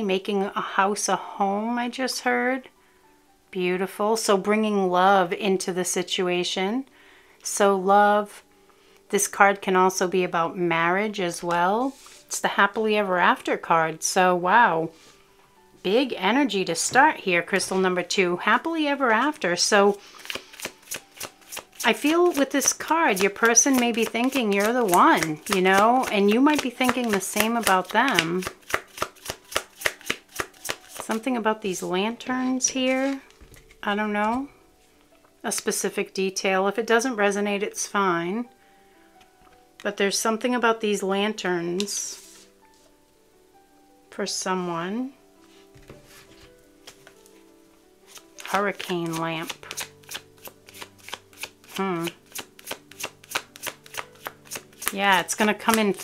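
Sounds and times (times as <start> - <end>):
cards being shuffled by hand: 20.1 - 31.9, 32.8 - 33.8, 41.8 - 42.5, 48.1 - 56.0.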